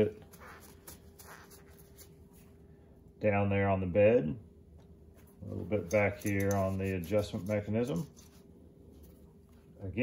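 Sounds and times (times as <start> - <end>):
paper towel rustling: 0.0 - 2.6, 5.1 - 10.0
low steady hum: 0.0 - 10.0.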